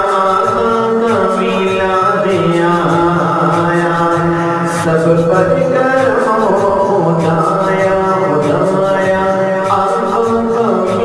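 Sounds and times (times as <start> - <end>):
devotional vocal chanting: 0.0 - 11.0.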